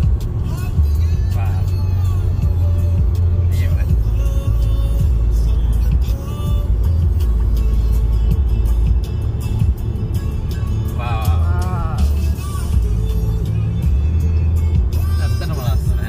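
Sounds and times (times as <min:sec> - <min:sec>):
music with singing and heavy bass: 0:00.0 - 0:16.0.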